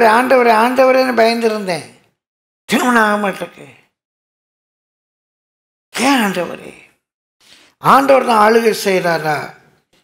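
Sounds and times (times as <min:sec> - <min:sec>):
man talking: 0:00.0 - 0:02.0, 0:02.7 - 0:03.9, 0:06.0 - 0:07.0, 0:07.8 - 0:09.7
man breathing: 0:07.4 - 0:07.8.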